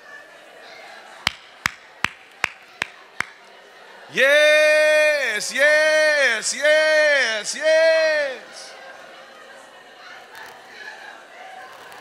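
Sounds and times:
murmur of room noise: 0:00.0 - 0:12.0
sharp taps: 0:01.3 - 0:03.4.

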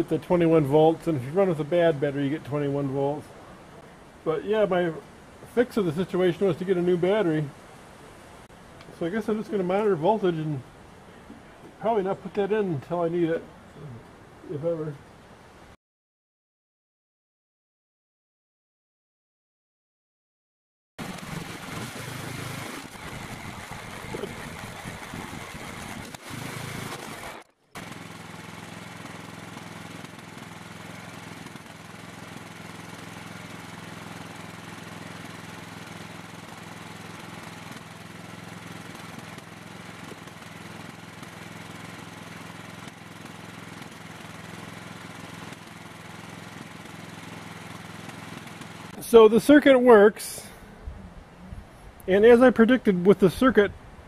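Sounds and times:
lawn tractor engine running: 0:00.0 - 0:02.6, 0:21.0 - 0:50.4.

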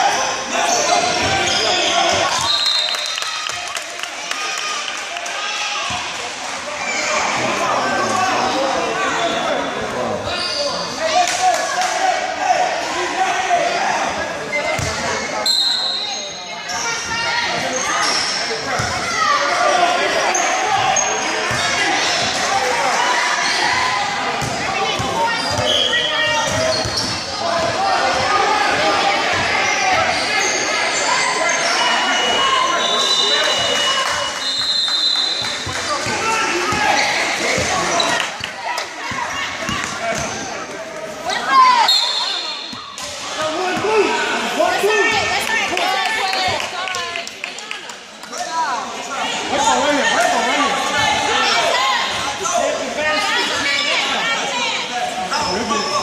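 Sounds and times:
voices in echoing hall: 0:00.0 - 0:56.0.

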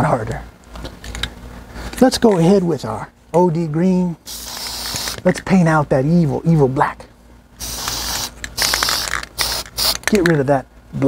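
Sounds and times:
aerosol spray can hissing: 0:04.3 - 0:05.2, 0:07.6 - 0:10.3.

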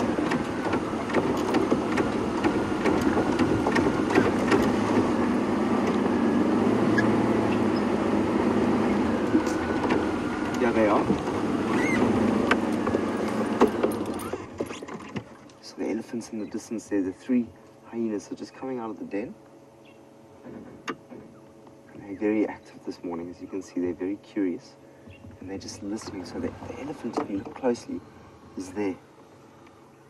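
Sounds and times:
knocks and rattles: 0:00.0 - 0:06.2, 0:09.2 - 0:15.3
vehicle engine running: 0:00.0 - 0:14.7, 0:15.6 - 0:30.0.

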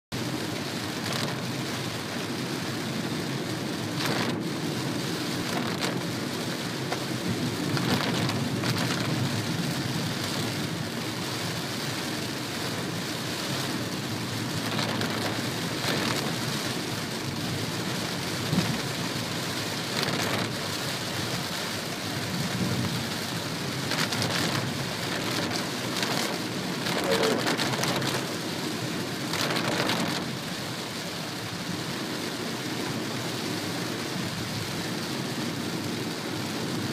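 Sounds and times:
heavy rain on vehicle roof: 0:00.1 - 0:36.9.

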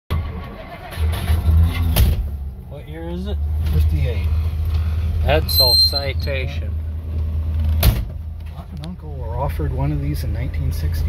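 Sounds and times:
car engine rumbling: 0:00.1 - 0:11.0.

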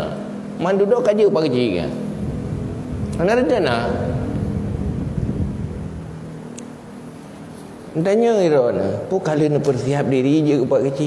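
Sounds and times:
faint steady hum: 0:00.0 - 0:11.0
low rumble: 0:02.0 - 0:07.1.

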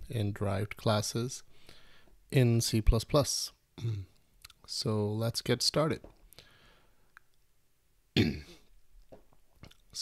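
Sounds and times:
man clearing his throat: 0:08.2 - 0:08.7.

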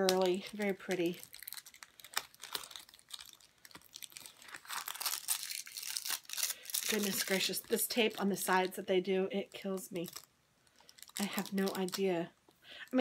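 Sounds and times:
wrapping crinkling and tearing: 0:00.0 - 0:08.9, 0:09.6 - 0:12.2
tape peeling off paper: 0:01.3 - 0:07.4.

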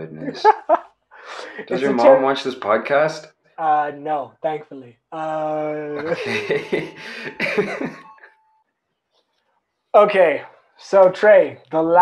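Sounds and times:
person laughing: 0:00.0 - 0:03.1, 0:05.2 - 0:08.2.

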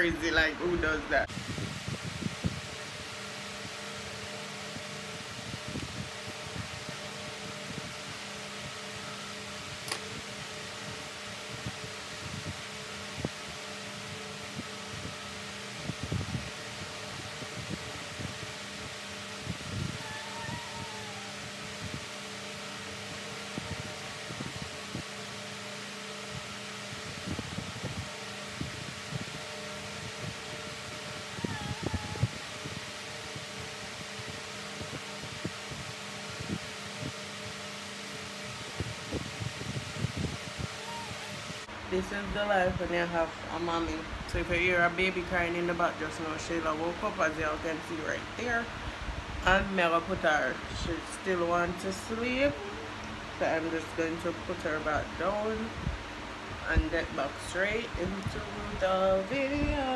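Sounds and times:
electric fan humming: 0:00.0 - 0:59.9.

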